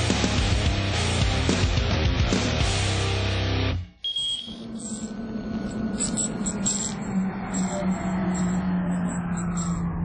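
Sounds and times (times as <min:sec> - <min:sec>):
high electronic beep: 0:04.0 - 0:05.1
steady low hum: 0:04.4 - 0:10.0.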